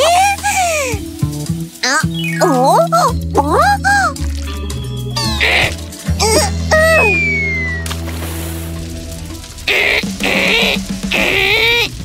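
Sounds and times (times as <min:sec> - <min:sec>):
squeaky cartoon voice crying out: 0:05.2 - 0:07.8, 0:09.7 - 0:11.9.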